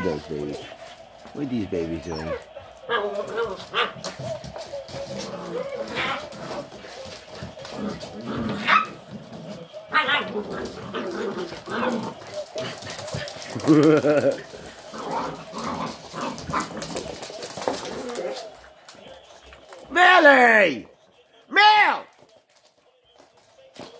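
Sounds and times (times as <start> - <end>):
dogs barking and yipping: 2.0 - 18.8.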